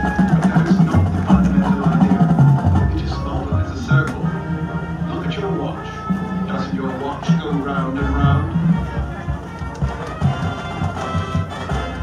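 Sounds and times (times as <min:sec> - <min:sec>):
marching band sustained chords: 0:00.0 - 0:12.0.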